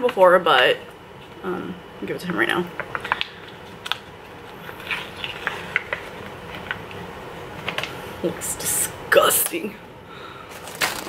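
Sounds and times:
food packaging crinkling: 0:02.8 - 0:08.0, 0:10.4 - 0:11.0.

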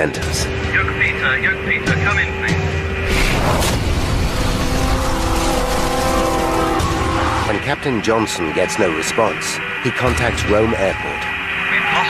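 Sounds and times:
loud roaring rush: 0:03.0 - 0:07.8
held steady tones: 0:04.3 - 0:12.0.

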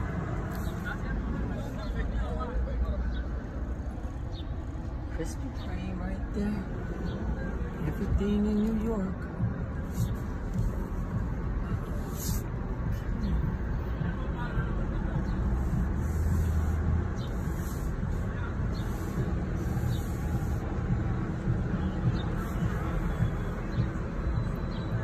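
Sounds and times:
traffic rumble and road noise: 0:00.0 - 0:25.0.

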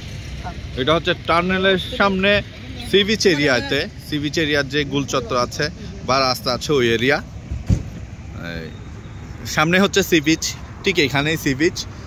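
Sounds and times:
highway traffic rumble: 0:00.0 - 0:12.0
dull thump: 0:07.5 - 0:08.1.

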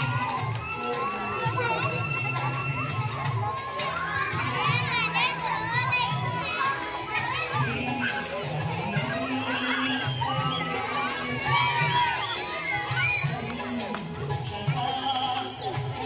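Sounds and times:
children shouting and cheering: 0:00.0 - 0:16.0
song with steady beat: 0:00.0 - 0:16.0.

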